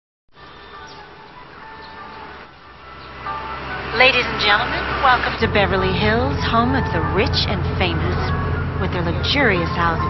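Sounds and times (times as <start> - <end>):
bus engine driving by: 0.4 - 10.0.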